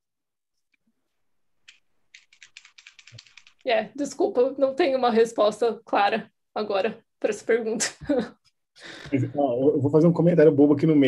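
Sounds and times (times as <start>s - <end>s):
typing on computer keyboard: 1.6s - 3.7s.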